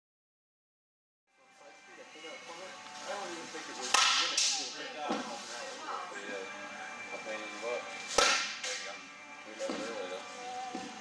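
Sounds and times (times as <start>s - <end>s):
bat striking ball: 3.9s - 4.6s, 8.1s - 8.8s
sharp crack: 3.9s - 4.6s, 8.2s - 8.8s.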